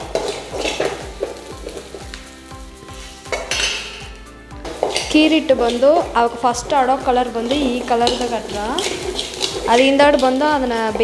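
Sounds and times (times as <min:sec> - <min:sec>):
metal spoon scraping steel bowl: 0:03.1 - 0:06.2, 0:07.2 - 0:11.0.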